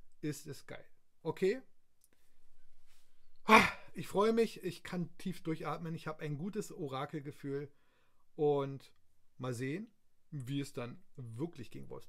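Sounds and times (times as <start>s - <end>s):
man sighing: 3.4s - 3.9s.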